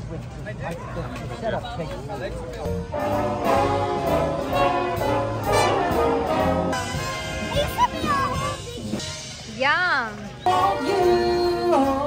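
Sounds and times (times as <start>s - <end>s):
live band with brass section: 2.6s - 12.0s.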